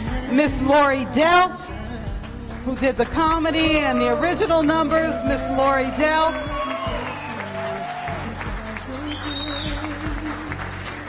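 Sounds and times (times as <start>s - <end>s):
background music with bass line: 0.0s - 11.0s
audience applause: 5.1s - 11.0s.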